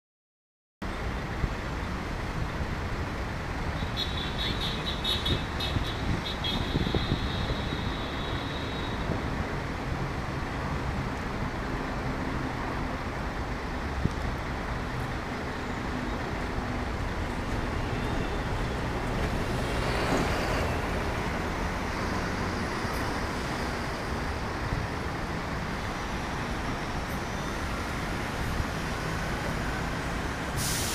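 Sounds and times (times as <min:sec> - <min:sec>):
city road traffic: 0:00.8 - 0:30.9.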